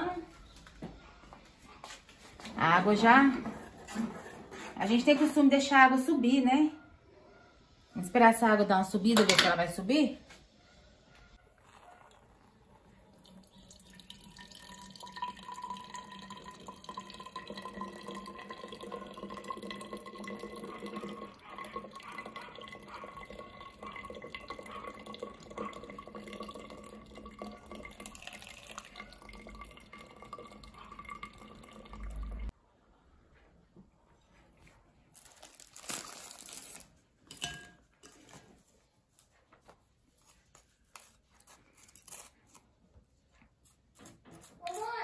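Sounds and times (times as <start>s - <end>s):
liquid trickling into jug: 11.6s - 32.5s.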